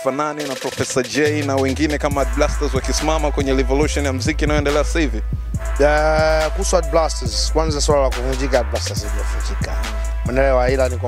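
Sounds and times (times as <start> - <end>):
rapping over a bass line: 0.0 - 11.0.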